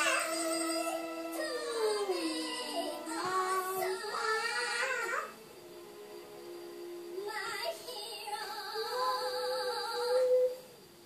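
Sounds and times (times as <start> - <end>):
toddler howl-like singing: 0.0 - 5.4
music: 0.0 - 11.0.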